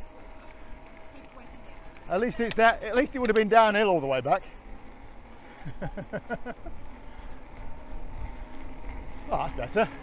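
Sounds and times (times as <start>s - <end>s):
electric bike riding on tarmac: 0.0s - 10.0s
person laughing: 5.5s - 6.9s.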